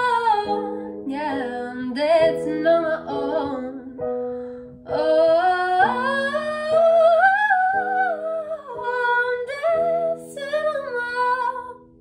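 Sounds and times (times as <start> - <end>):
electronic keyboard chords: 0.0 - 12.0.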